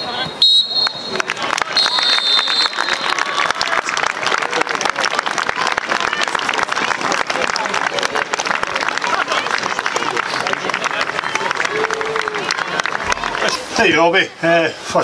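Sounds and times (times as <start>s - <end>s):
referee's whistle: 0.0s - 3.3s
voices: 0.0s - 15.0s
applause: 0.8s - 13.7s.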